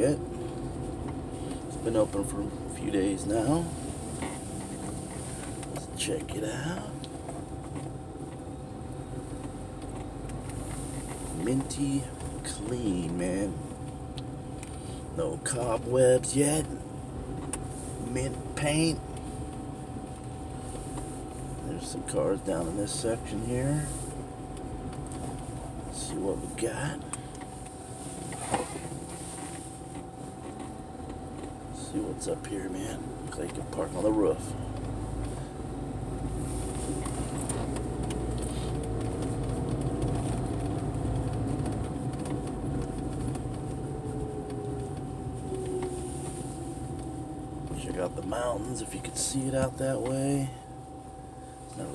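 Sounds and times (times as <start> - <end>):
car engine and tyre noise: 0.0 - 51.9
faint constant hum: 0.0 - 51.9
faint constant tone: 0.0 - 51.9.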